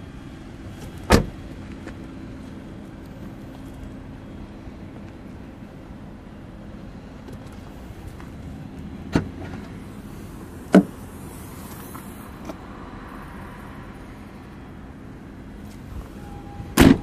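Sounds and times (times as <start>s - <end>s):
tailgate latch clunk: 1.0s - 1.4s, 16.8s - 17.0s
tailgate release click: 16.8s - 17.0s.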